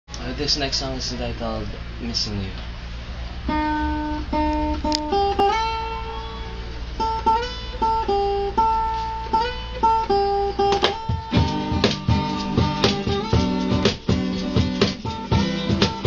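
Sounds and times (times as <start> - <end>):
acoustic guitar picked notes: 2.8 - 16.0
acoustic guitar strummed chords: 2.9 - 16.0.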